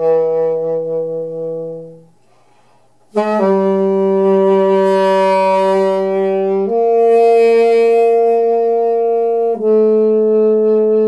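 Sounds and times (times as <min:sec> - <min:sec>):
saxophone long low note: 0:00.0 - 0:11.0.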